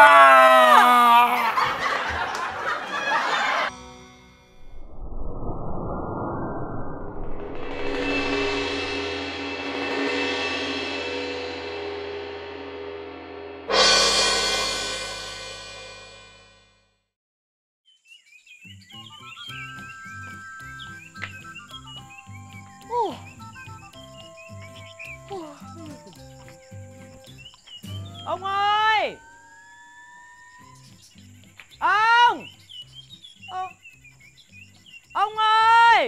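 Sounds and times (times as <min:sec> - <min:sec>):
birds chirping: 0:17.9 - 0:35.9
light background music: 0:19.0 - 0:29.4
woman calling out loudly: 0:28.2 - 0:29.3, 0:31.8 - 0:32.4, 0:35.2 - 0:36.0.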